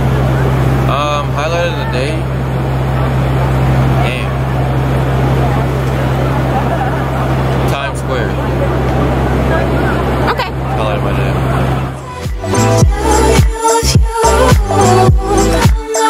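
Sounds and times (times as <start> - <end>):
steady low hum: 0.0 - 15.8
crowd talking indistinctly: 0.0 - 16.0.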